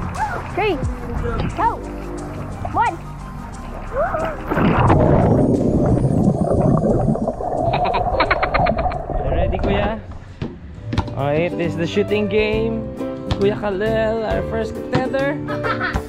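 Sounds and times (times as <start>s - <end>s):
background music: 0.0s - 8.7s, 9.7s - 16.0s
muffled underwater rush and bubbles: 2.3s - 10.2s.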